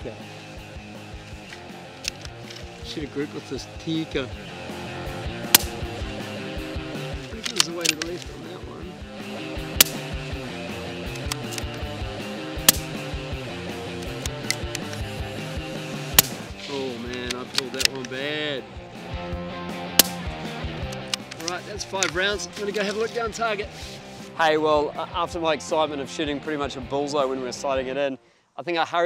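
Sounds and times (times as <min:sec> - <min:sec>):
background music: 0:00.0 - 0:29.0
rifle bolt clicks: 0:01.4 - 0:02.7, 0:05.5 - 0:05.8, 0:07.2 - 0:08.4, 0:09.8 - 0:10.1, 0:11.1 - 0:11.9, 0:12.6 - 0:13.0, 0:14.0 - 0:15.1, 0:16.2 - 0:16.4, 0:17.0 - 0:18.2, 0:20.0 - 0:23.0
suppressed rifle shots: 0:05.4 - 0:06.1, 0:09.6 - 0:10.2, 0:12.6 - 0:13.2, 0:16.0 - 0:18.1, 0:19.9 - 0:22.2.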